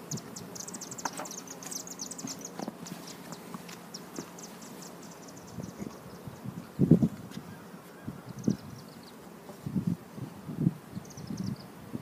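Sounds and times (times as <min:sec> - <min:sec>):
small bird twittering: 0:00.0 - 0:06.2, 0:11.0 - 0:11.7
honeybees buzzing: 0:00.0 - 0:12.0.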